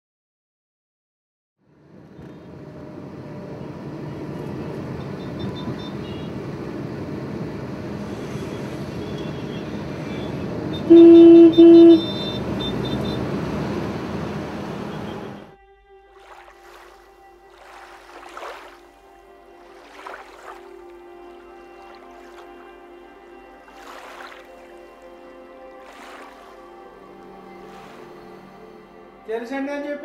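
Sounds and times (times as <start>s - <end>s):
street traffic din: 1.6s - 15.5s
faint horn toots: 5.0s - 6.6s, 8.0s - 30.0s
loud vehicle horn blasts: 5.0s - 6.6s, 8.1s - 13.8s, 14.6s - 15.6s.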